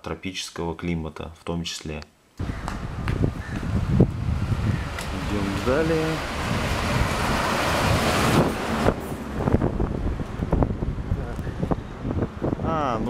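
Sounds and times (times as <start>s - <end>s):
street rumble: 2.4s - 13.0s
wind on microphone: 2.4s - 13.0s.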